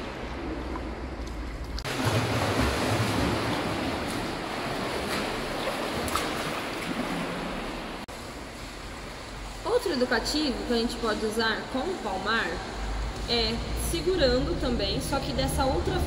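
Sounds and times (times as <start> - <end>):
pool-side noise: 0.0 - 16.0
swimmer splashing in pool: 1.8 - 10.0.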